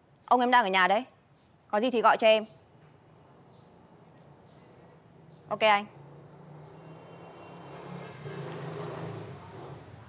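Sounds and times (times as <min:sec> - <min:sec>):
vehicle engine passing by: 0:05.8 - 0:10.0.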